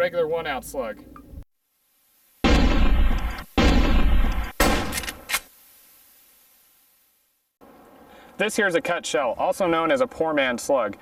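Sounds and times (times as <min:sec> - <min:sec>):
loud booming hits: 0:02.4 - 0:05.0
sharp cracks: 0:02.4 - 0:05.6.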